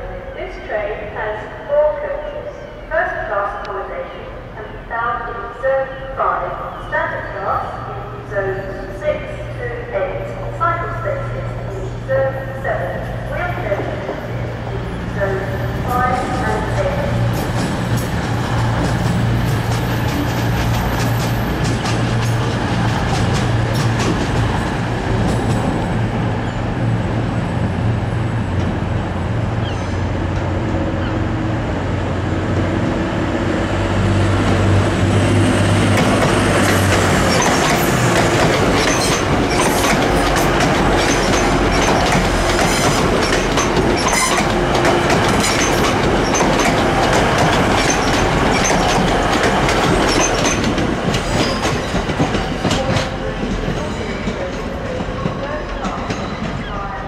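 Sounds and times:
train wheels clattering over rail joints: 17.3 - 25.8, 35.8 - 56.7
diesel engines droning: 26.7 - 50.2.

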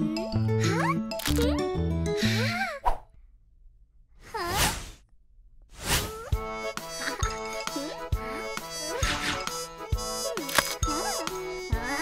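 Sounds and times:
cartoon whoosh: 4.3 - 5.0, 5.8 - 6.4.

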